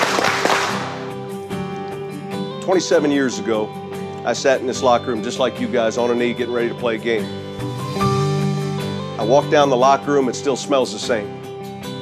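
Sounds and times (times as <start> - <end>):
background music sustained notes: 0.0 - 12.0.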